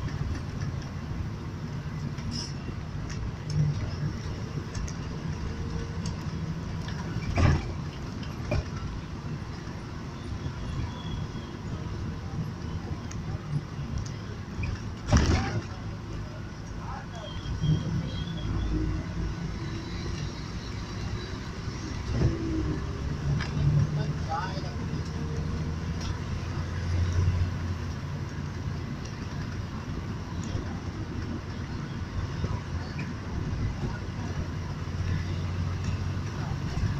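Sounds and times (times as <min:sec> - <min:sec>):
tyre and traffic noise: 0:00.0 - 0:36.9
vehicle engine drone: 0:00.0 - 0:36.9.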